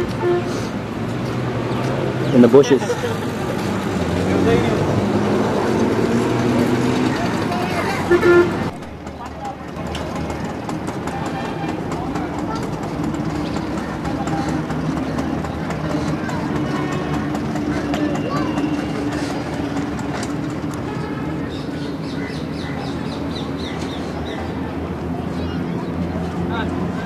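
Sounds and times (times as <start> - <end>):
indistinct voices: 0.0 - 27.0.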